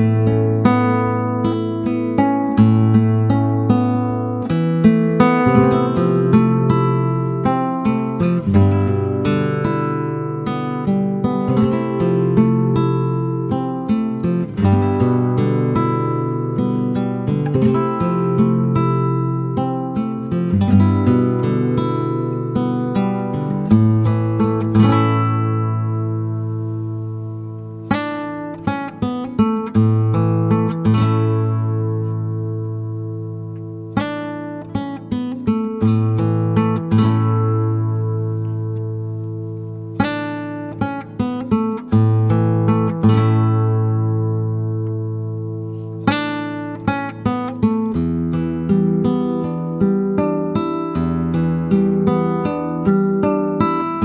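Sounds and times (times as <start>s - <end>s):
plucked acoustic guitar: 0.0s - 54.0s.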